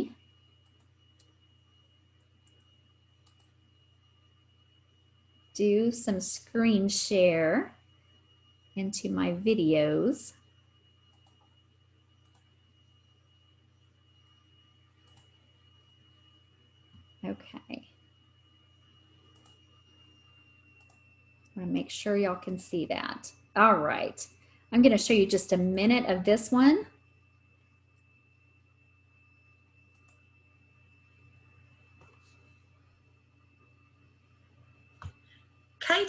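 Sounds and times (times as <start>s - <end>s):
faint low hum: 0.0s - 36.0s
thin high whine: 0.0s - 36.0s
faint ticks: 2.2s - 3.6s, 11.1s - 11.6s, 12.2s - 12.5s.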